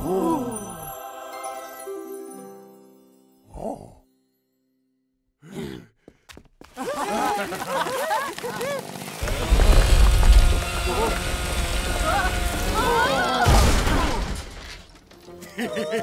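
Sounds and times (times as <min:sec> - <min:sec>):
excited voices whooping and cheering: 0:06.8 - 0:10.0, 0:10.8 - 0:14.2
heavy low rumble: 0:09.2 - 0:12.6.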